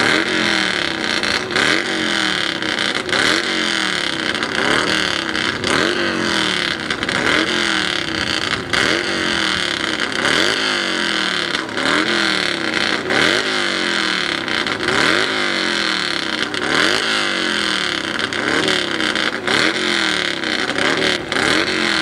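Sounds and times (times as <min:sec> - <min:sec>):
motorcycle engine revving: 0:00.0 - 0:22.0.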